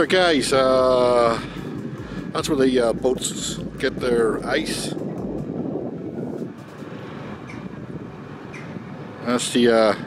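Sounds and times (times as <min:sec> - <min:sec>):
low background rumble: 0:00.0 - 0:10.0
wind noise on microphone: 0:00.0 - 0:10.0.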